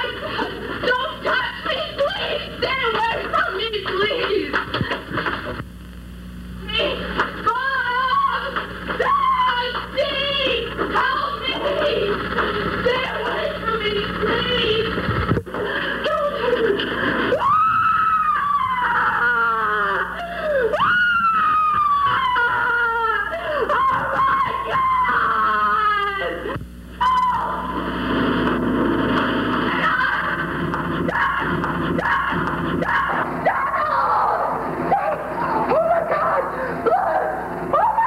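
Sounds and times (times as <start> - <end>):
steady hum: 0.0 - 38.0
person screaming: 31.1 - 34.5.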